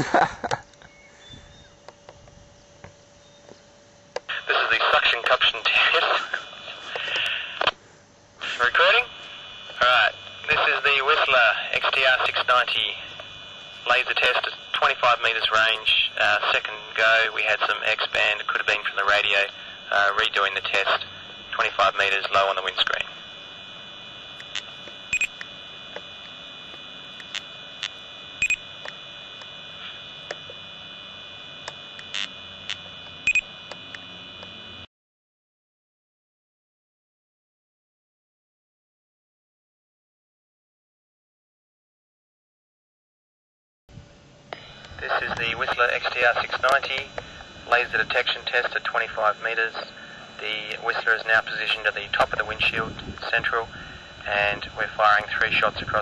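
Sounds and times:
man talking over two-way radio: 0:04.3 - 0:07.7, 0:08.4 - 0:23.3, 0:45.0 - 0:56.0
clicks: 0:24.3 - 0:30.6.

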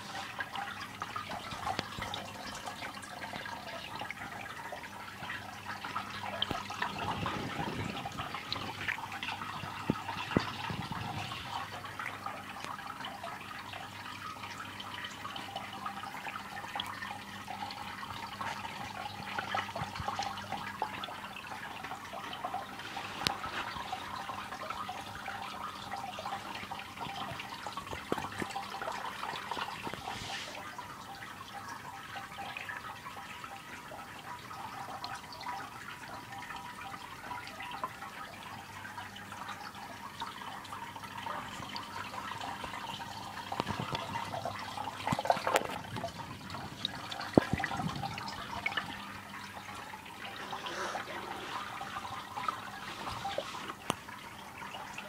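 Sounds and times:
water trickling and splashing: 0:00.0 - 0:55.0.

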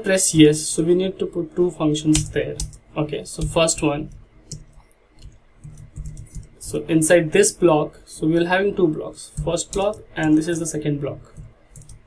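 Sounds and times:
computer keyboard key clicks: 0:02.1 - 0:02.8, 0:04.5 - 0:06.5, 0:09.4 - 0:10.4, 0:11.3 - 0:12.0.

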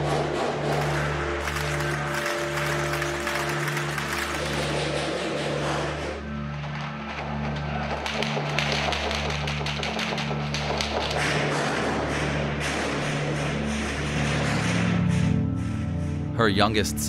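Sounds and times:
music with pulsing low note: 0:00.0 - 0:17.0
sharp clicks or cracks: 0:00.7 - 0:05.0.

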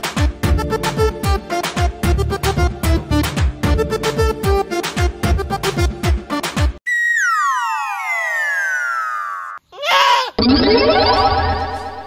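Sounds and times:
echoing descending electronic tone: 0:06.9 - 0:09.6, 0:10.4 - 0:12.0.

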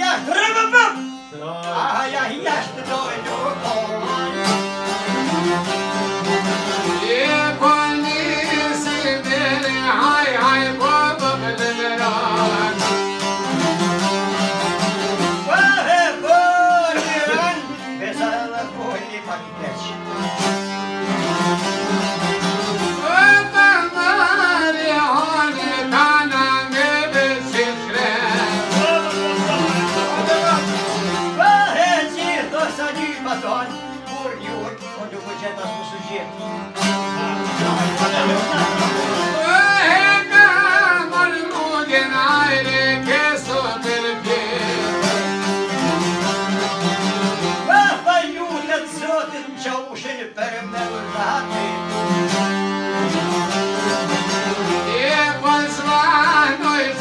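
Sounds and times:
man singing: 0:00.0 - 0:13.4, 0:15.2 - 0:20.1, 0:22.2 - 0:35.8, 0:37.0 - 0:46.2, 0:47.3 - 0:52.2, 0:53.8 - 0:57.0
accordion: 0:00.0 - 0:57.0
bowed string instrument: 0:00.0 - 0:57.0
plucked lutes: 0:00.0 - 0:57.0.

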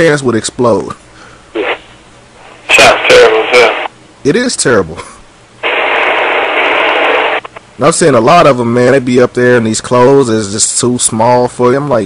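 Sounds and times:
radio static hiss: 0:01.5 - 0:04.4, 0:05.6 - 0:08.3.

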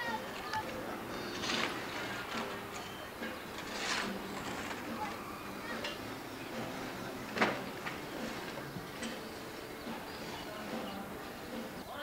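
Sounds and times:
faint distant sounds: 0:00.0 - 0:12.0
steady background hiss: 0:00.2 - 0:12.0.

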